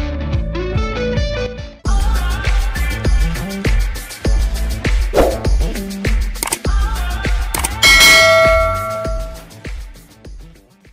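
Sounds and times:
background music with steady beat: 0:01.9 - 0:10.9
bell-like chime: 0:07.7 - 0:09.4.

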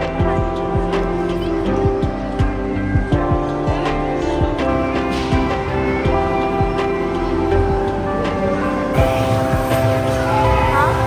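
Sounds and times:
hubbub of voices: 0:00.0 - 0:11.0.

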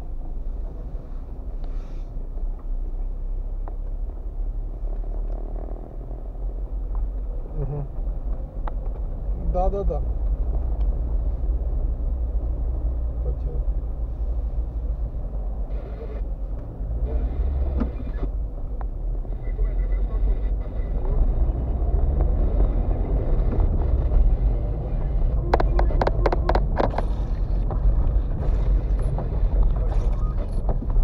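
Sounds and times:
car rumbling over rough road: 0:00.0 - 0:31.0.

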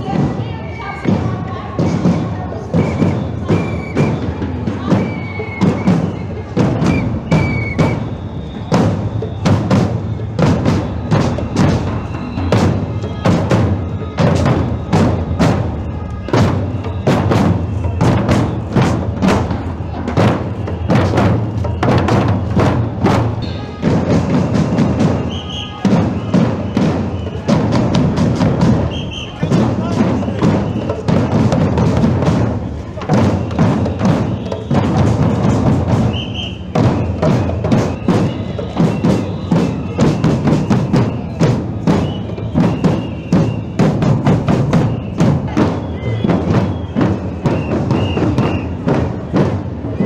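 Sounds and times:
big marching drums thumping: 0:00.0 - 0:50.0
street crowd voices: 0:00.0 - 0:50.0.

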